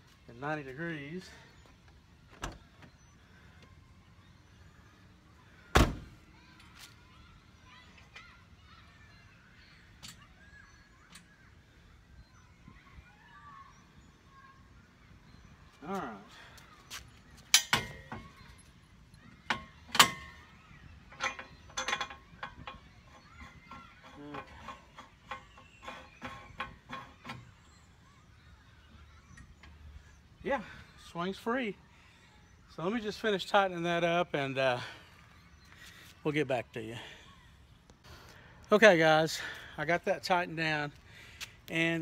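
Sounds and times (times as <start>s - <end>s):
metal clanks: 21.1s - 27.6s.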